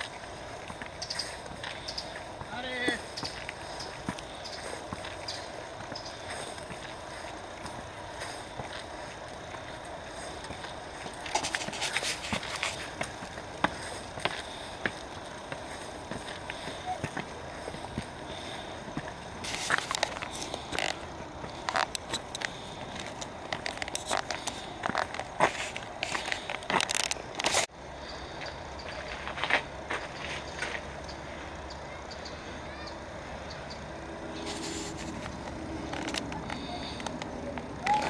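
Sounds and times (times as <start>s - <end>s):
footsteps crunching on gravel: 0.0s - 27.7s, 28.9s - 31.0s, 34.4s - 37.3s
footsteps on stone steps: 0.0s - 27.7s, 34.4s - 37.7s
people talking: 2.4s - 3.1s, 16.4s - 18.5s, 31.7s - 33.2s, 36.1s - 38.0s.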